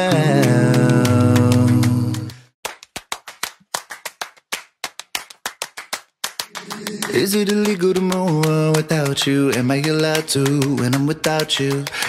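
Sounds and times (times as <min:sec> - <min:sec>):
sung a cappella chords: 0:00.0 - 0:02.4, 0:06.6 - 0:12.0
rhythmic handclaps: 0:00.0 - 0:12.0.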